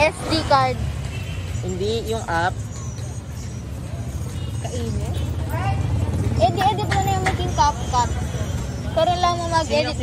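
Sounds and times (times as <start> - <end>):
voices: 0.0 - 10.0.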